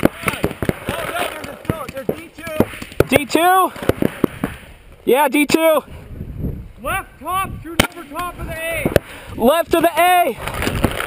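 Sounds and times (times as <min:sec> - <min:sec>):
paintball markers popping: 0:00.0 - 0:03.2.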